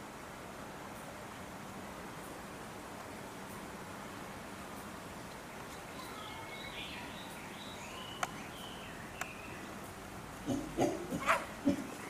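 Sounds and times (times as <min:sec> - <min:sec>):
chimpanzees grunting: 0:10.4 - 0:12.0.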